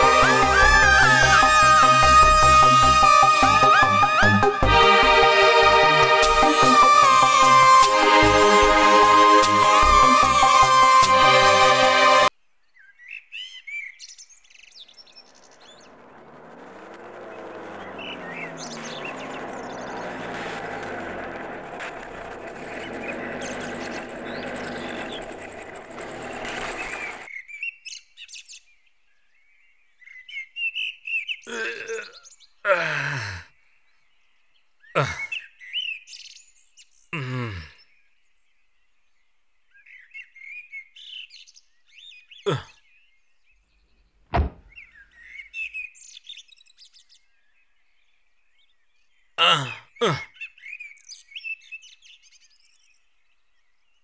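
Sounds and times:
birds chirping: 0:12.6 - 0:27.6, 0:29.6 - 0:40.6, 0:41.2 - 0:54.0
loud sounds falling in pitch: 0:15.2 - 0:27.3.

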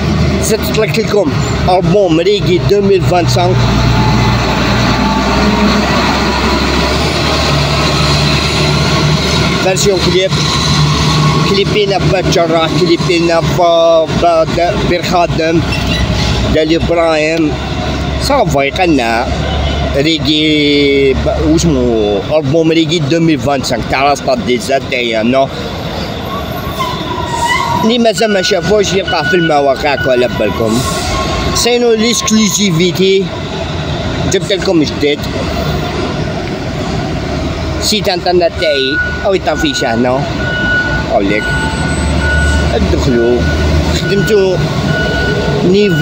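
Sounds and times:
street traffic rumble: 0:00.0 - 0:46.0
man talking: 0:00.4 - 0:03.7, 0:09.6 - 0:10.4, 0:11.4 - 0:15.7, 0:16.5 - 0:17.6, 0:18.2 - 0:25.5, 0:27.8 - 0:31.0, 0:31.6 - 0:33.3, 0:34.2 - 0:35.4, 0:37.8 - 0:40.4, 0:41.0 - 0:41.5, 0:42.7 - 0:44.7, 0:45.6 - 0:46.0.

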